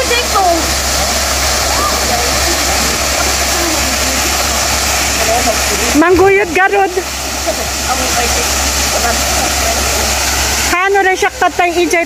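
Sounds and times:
small waterfall pouring into pool: 0:00.0 - 0:12.0.

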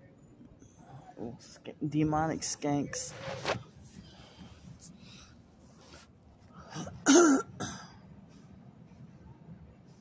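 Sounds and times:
woman clearing her throat: 0:06.8 - 0:07.9.

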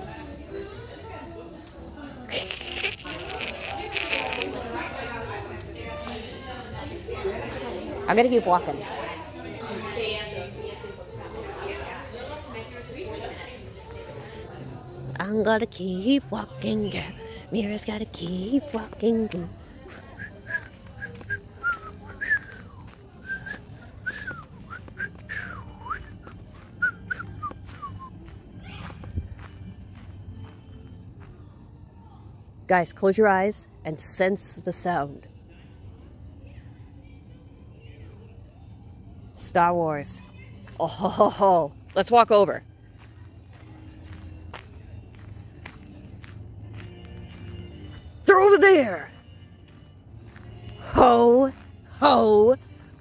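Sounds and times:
faint music: 0:00.0 - 0:53.0
soft footsteps on a path: 0:09.1 - 0:32.6, 0:40.2 - 0:53.0.

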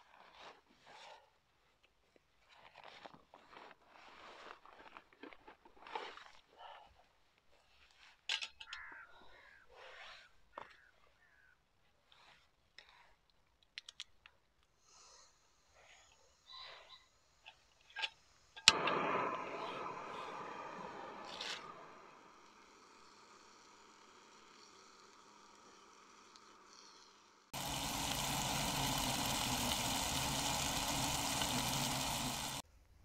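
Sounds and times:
stove ignition click: 0:18.6 - 0:20.8
loud gas hiss: 0:18.7 - 0:32.6
food sizzling in a pan: 0:19.4 - 0:32.6.

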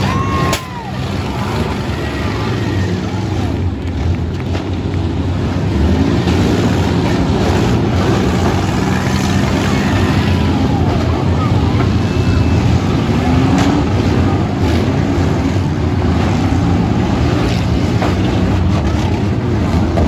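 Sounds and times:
many engines revving: 0:00.0 - 0:20.0.

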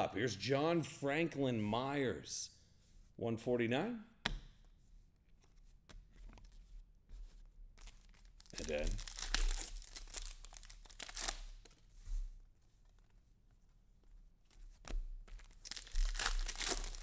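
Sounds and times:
card pack wrapper tearing and crinkling: 0:07.8 - 0:11.8, 0:15.4 - 0:17.0.

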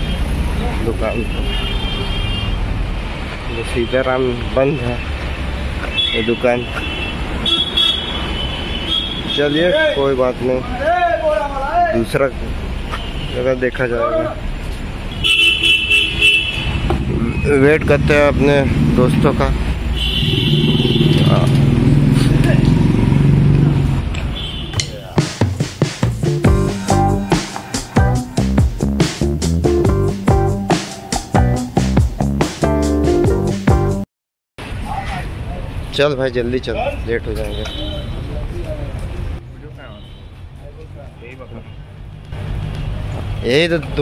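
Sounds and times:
street traffic rumble: 0:00.0 - 0:34.0, 0:34.6 - 0:44.0
vehicle horn toots: 0:01.1 - 0:02.6, 0:05.9 - 0:09.7, 0:15.1 - 0:16.8, 0:20.0 - 0:21.6, 0:24.3 - 0:24.8
vehicle engine humming: 0:16.8 - 0:24.3, 0:26.0 - 0:32.4
person speaking: 0:26.4 - 0:28.4.

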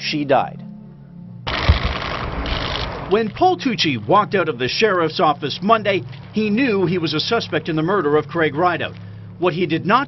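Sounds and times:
loud rushing noise: 0:01.5 - 0:03.2
low rumbling thumps: 0:01.5 - 0:03.6.

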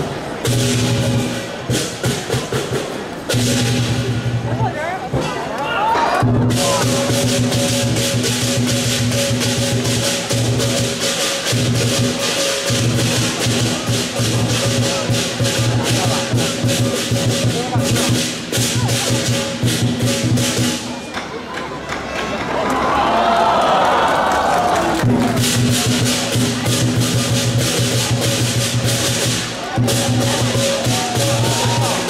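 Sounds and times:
cymbals clashing: 0:00.0 - 0:04.5, 0:05.1 - 0:21.1, 0:25.3 - 0:32.0
large drum beating fast: 0:00.4 - 0:04.7, 0:06.2 - 0:20.9, 0:24.9 - 0:32.0
crowd cheering: 0:04.6 - 0:07.1, 0:21.0 - 0:26.8, 0:29.2 - 0:32.0.

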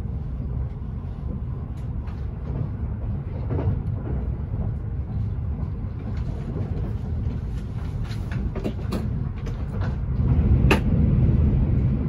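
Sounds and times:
train cabin rumble: 0:00.0 - 0:12.0.

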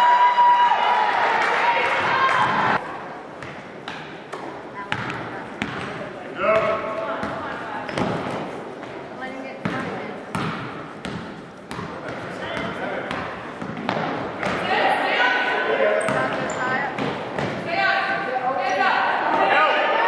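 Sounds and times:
basketball bouncing on hardwood floor: 0:09.6 - 0:14.6.

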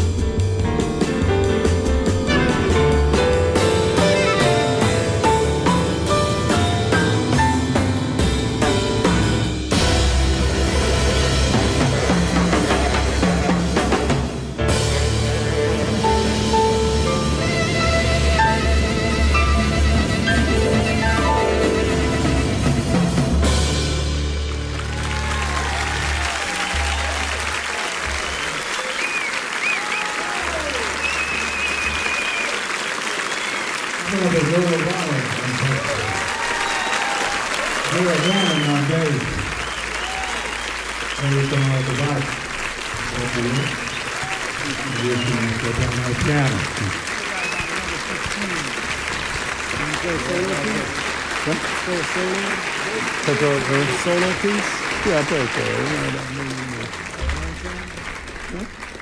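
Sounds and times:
jazz band low notes: 0:00.0 - 0:29.4, 0:37.8 - 0:59.0
audience applauding: 0:10.8 - 0:14.5, 0:15.3 - 0:59.0.

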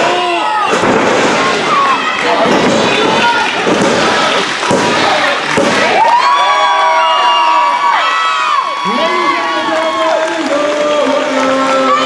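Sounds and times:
crowd cheering and shouting: 0:00.0 - 0:12.0.

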